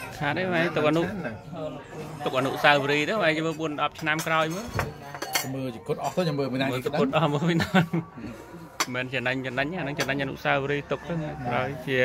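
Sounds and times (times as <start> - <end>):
spoons clinking on ceramic plates: 3.4 - 6.2.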